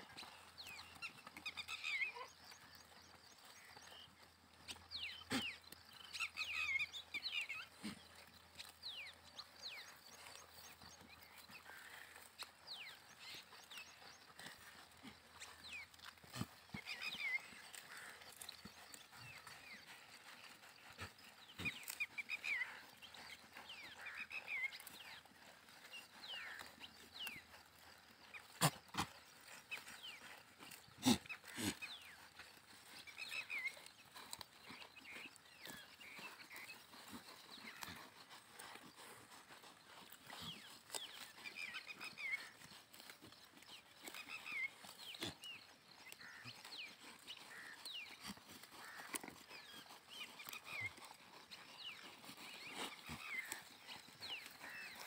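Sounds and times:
hoof steps: 0:00.0 - 0:55.0
animals tearing grass: 0:00.1 - 0:55.0.

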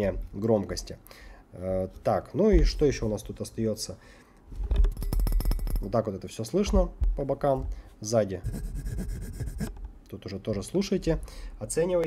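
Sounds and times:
fingers scratching microphone: 0:08.4 - 0:09.8.

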